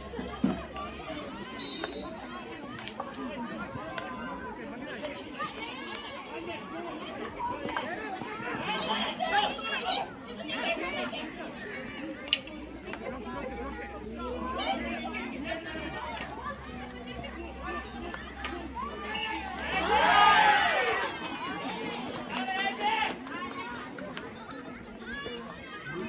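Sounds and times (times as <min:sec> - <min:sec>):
people chattering and calling out: 0:00.0 - 0:26.0.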